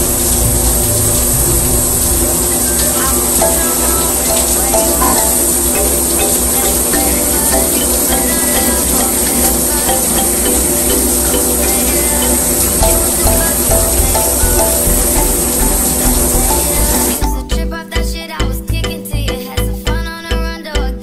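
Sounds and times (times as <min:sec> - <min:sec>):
running tap water: 0:00.0 - 0:17.3
music with steady beat: 0:00.0 - 0:21.0.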